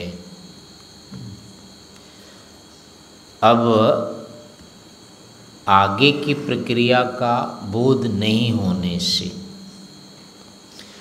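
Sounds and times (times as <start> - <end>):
high-pitched background whine: 0.0 - 11.0.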